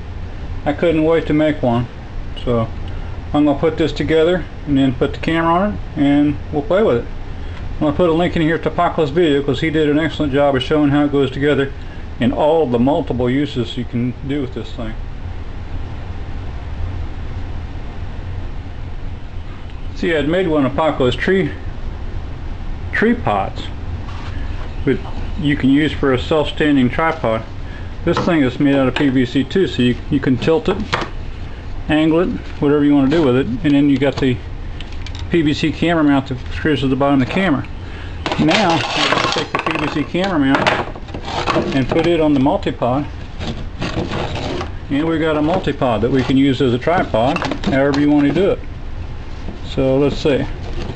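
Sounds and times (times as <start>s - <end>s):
low room hum with hiss: 0.0s - 50.9s.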